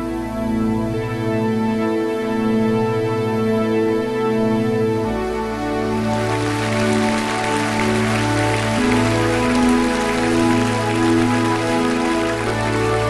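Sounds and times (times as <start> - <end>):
rain-like noise patter: 6.0 - 13.0.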